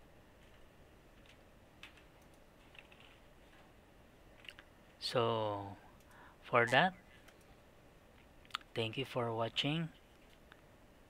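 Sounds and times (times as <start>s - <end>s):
computer mouse clicks: 1.2s - 3.2s, 7.2s - 7.5s.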